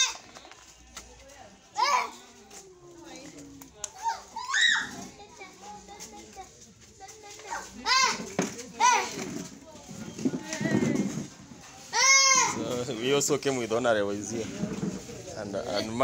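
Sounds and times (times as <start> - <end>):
children's high-pitched calls: 0.0 - 0.2, 1.8 - 2.2, 4.0 - 6.1, 11.8 - 12.6.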